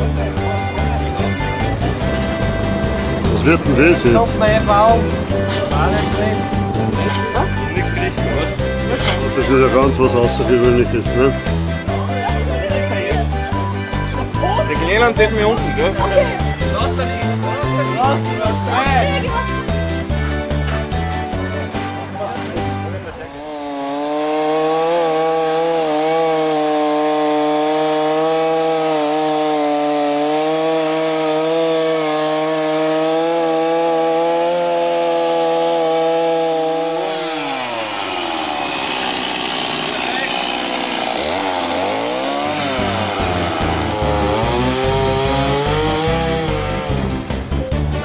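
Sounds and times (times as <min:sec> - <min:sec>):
chainsaw cutting wood: 0:00.0 - 0:48.0.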